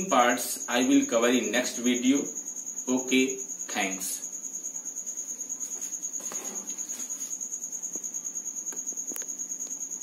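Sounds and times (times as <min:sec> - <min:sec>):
insect trilling: 0:00.0 - 0:10.0.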